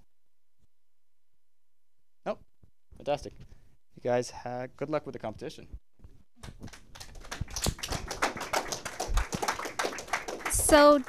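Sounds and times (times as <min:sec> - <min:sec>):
small group clapping: 0:06.4 - 0:11.0.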